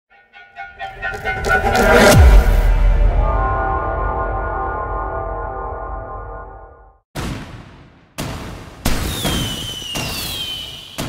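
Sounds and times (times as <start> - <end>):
firework bursts with crackle: 8.9 - 11.0.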